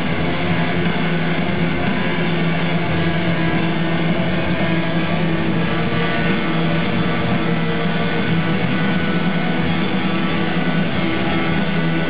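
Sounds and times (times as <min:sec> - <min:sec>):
amplified noise hiss: 0:00.0 - 0:12.0
rock band droning chord: 0:00.0 - 0:12.0.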